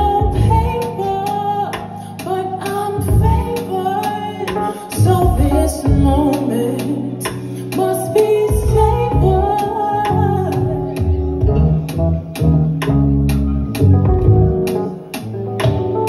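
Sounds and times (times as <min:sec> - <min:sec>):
woman singing into a microphone: 0:00.0 - 0:11.6
bass line: 0:00.0 - 0:16.0
drums with a steady beat: 0:00.0 - 0:16.0
electric guitar: 0:00.0 - 0:16.0
keyboard: 0:00.0 - 0:16.0.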